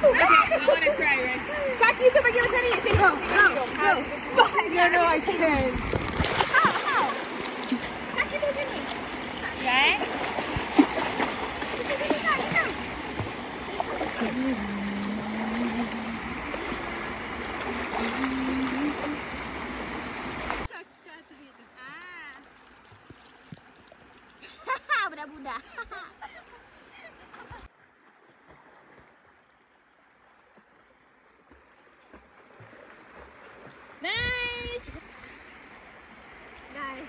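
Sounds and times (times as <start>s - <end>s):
people splashing in water: 0.0s - 20.7s, 27.0s - 29.4s, 31.4s - 35.4s
running water rushing: 0.0s - 37.0s.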